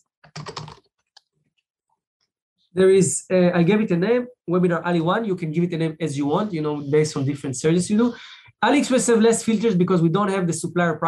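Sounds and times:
typing on computer keyboard: 0.2 - 1.3.

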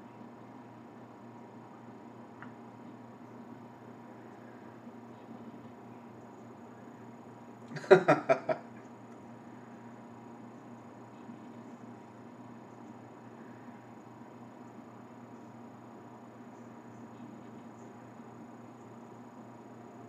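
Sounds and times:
low electrical hum: 0.0 - 20.0
microphone hiss: 0.0 - 20.0.

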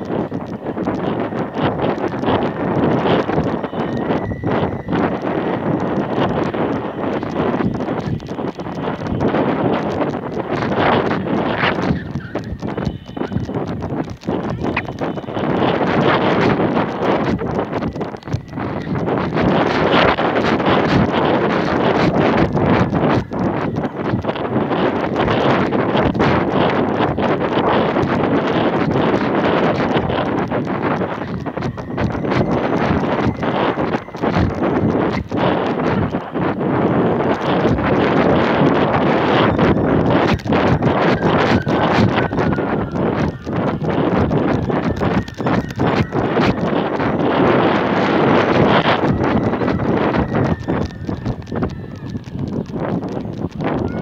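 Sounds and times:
rapid uneven knocking and rattling: 0.0 - 54.0
wind buffeting microphone: 0.0 - 54.0.

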